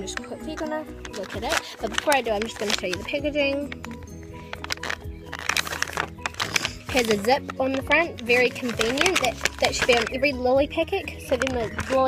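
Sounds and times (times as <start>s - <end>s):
background music with held notes: 0.0s - 12.0s
plastic bag crinkling: 0.0s - 12.0s.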